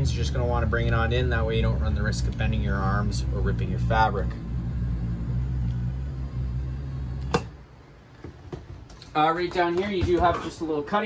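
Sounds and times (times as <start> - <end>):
electric motor humming: 0.0 - 7.9.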